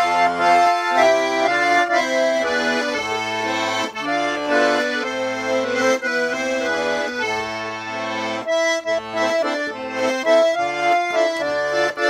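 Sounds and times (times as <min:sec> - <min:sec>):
button accordion playing: 0:00.0 - 0:12.0.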